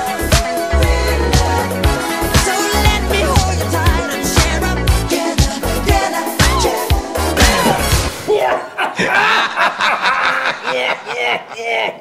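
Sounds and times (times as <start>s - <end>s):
person snickering: 8.6s - 12.0s.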